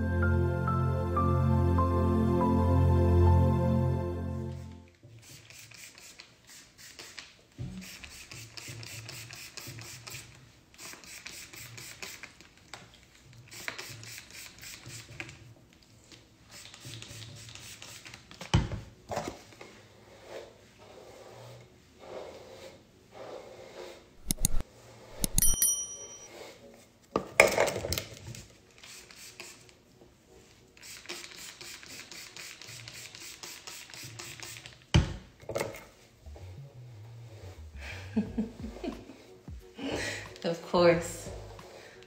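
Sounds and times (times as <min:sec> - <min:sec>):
spray bottle hissing: 0:05.2 - 0:12.3, 0:13.5 - 0:15.1, 0:28.8 - 0:29.6, 0:30.8 - 0:34.8
hands rubbing hair: 0:24.2 - 0:25.5
metallic ring of high tones: 0:25.2 - 0:26.4.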